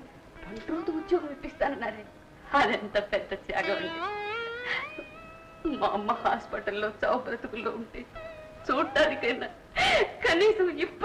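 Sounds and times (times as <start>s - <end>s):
woman crying while speaking: 8.7s - 10.6s.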